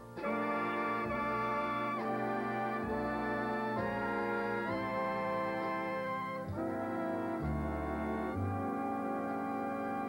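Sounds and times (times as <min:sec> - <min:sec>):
bass notes: 0:00.0 - 0:10.0
brass section sustained chords: 0:00.0 - 0:10.0.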